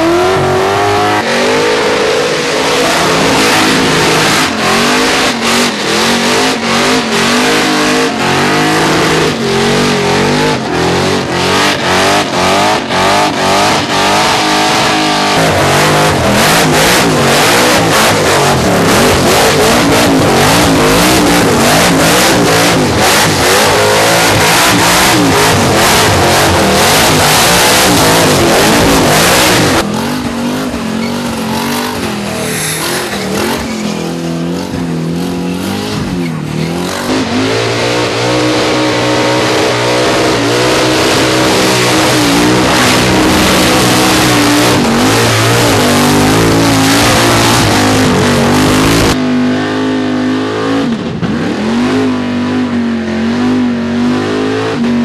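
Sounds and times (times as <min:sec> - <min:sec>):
car engines revving hard: 0:00.0 - 0:55.0.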